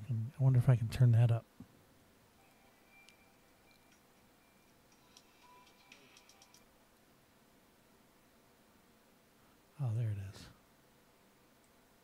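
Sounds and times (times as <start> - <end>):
computer mouse clicks: 4.9 - 6.7.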